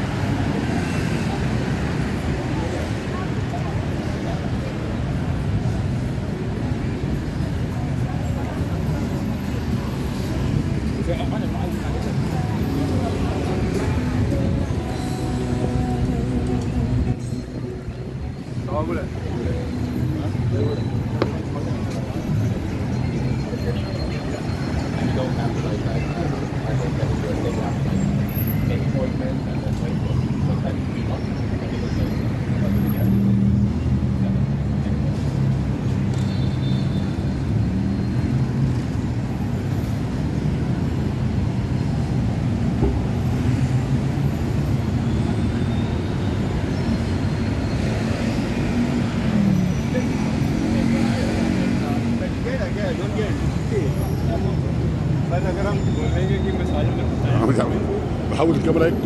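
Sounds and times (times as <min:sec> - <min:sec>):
chatter of passers-by: 0:00.0 - 0:59.0
road traffic: 0:00.0 - 0:59.0.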